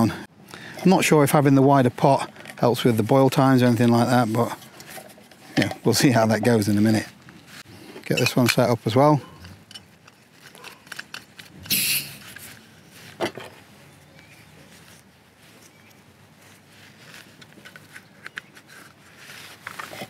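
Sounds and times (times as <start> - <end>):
rustling: 2.0 - 20.0.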